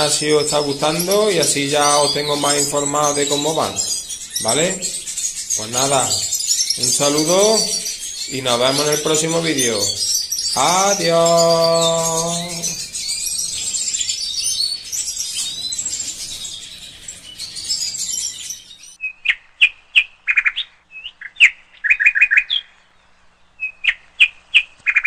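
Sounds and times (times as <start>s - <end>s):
goldfinches twittering: 0.0s - 25.0s.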